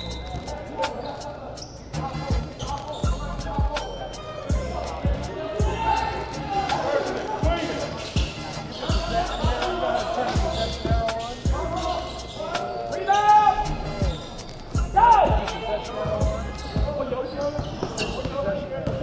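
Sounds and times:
sneakers squeaking on floor: 0.0 - 19.0.

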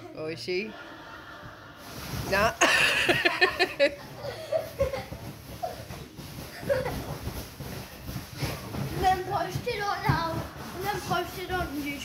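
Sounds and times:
fabric cover rustling: 1.6 - 12.0
dog pawing at bean bag bed: 4.0 - 12.0.

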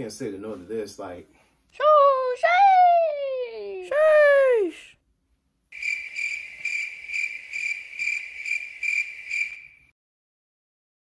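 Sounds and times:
crickets chirping trill: 5.7 - 9.9.

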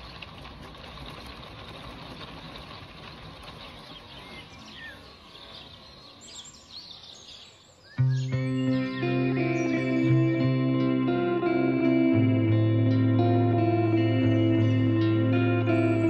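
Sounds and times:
rain hissing: 0.0 - 5.8
birds chirping: 0.0 - 16.0
guitar music: 8.0 - 16.0.

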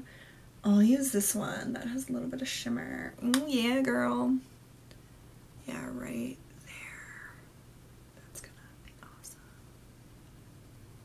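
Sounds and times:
woman whispering: 5.7 - 7.5, 8.2 - 9.6.

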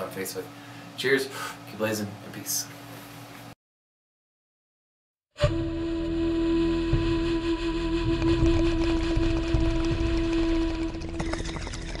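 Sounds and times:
held droning tone: 5.4 - 12.0.

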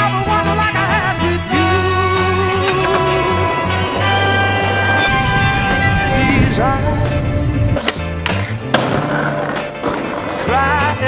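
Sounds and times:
skateboard wheels rolling: 0.0 - 11.0
song playing: 0.0 - 11.0
skateboard striking pavement: 2.2 - 5.8, 7.8 - 11.0.

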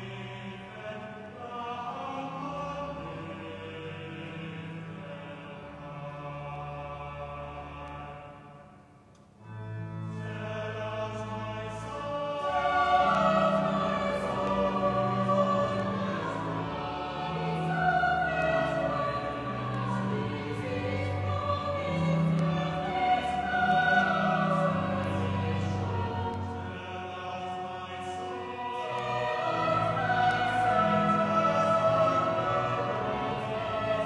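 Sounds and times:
choir singing sustained chords: 0.0 - 34.0.

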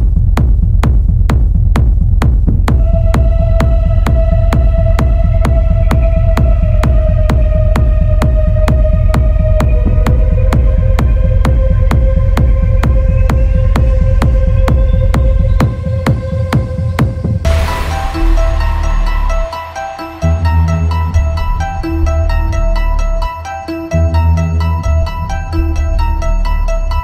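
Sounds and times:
hard kick drum: 0.0 - 23.3
heavy bass: 0.0 - 27.0
long held synth tone: 17.4 - 23.6.

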